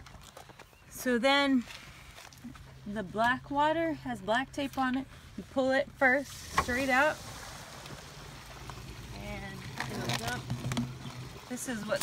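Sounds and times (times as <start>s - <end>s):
waste water rushing through hose: 6.1s - 12.0s.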